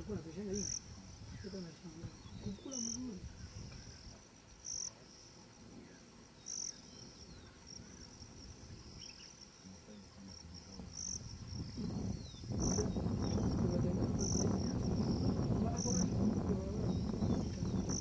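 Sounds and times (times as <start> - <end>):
high-pitched insect trill: 0.0 - 18.0.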